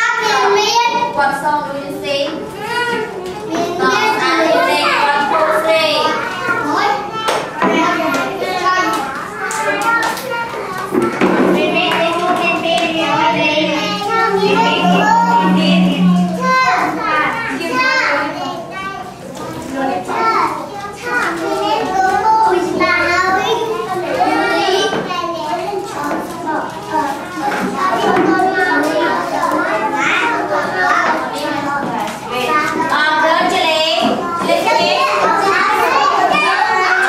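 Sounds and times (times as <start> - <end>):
young children chattering: 0.0 - 37.0
low steady tone: 12.3 - 17.1.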